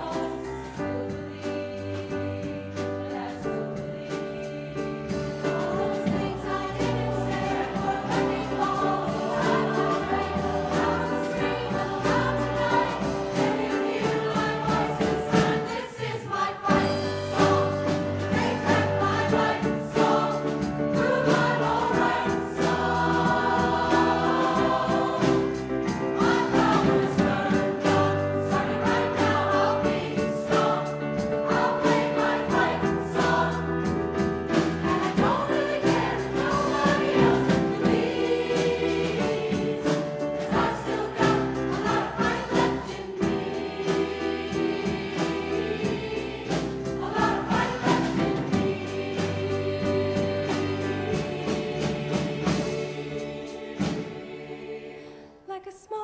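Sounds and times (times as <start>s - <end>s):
piano and drum kit accompaniment: 0.0s - 55.3s
mixed choir singing: 0.0s - 55.6s.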